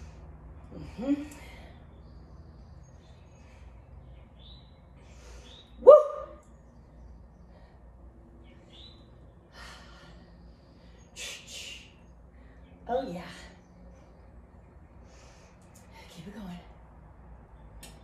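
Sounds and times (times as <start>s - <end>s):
woman breathing: 0.0s - 2.2s, 2.9s - 5.8s, 7.3s - 8.4s, 9.4s - 12.8s.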